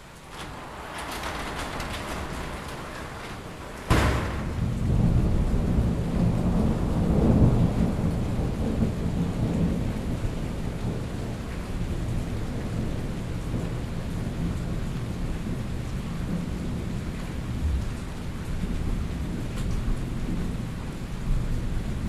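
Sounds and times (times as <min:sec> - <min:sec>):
rolling thunder: 0:00.0 - 0:22.0
steady rain: 0:00.0 - 0:22.0.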